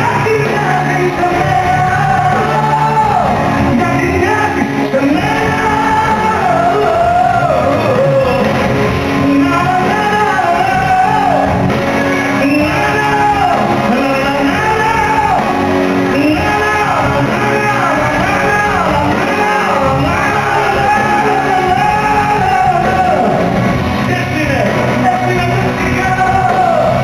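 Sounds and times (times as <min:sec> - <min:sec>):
band playing: 0:00.0 - 0:27.0
man singing into a microphone: 0:00.0 - 0:27.0.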